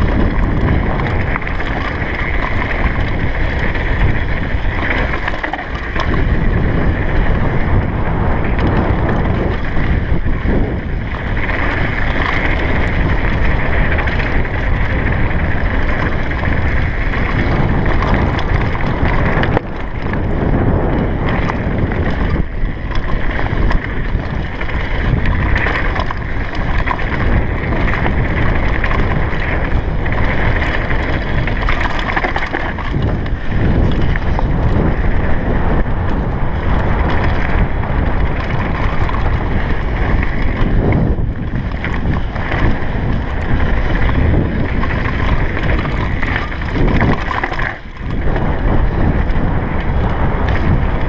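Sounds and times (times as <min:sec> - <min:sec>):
bike rattling: 0:00.0 - 0:51.0
tyres crunching over gravel: 0:00.0 - 0:51.0
wind rushing over microphone: 0:00.0 - 0:51.0.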